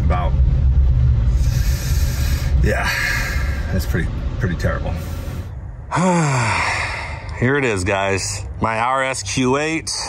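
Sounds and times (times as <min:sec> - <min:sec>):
man sighing: 0:05.9 - 0:07.3.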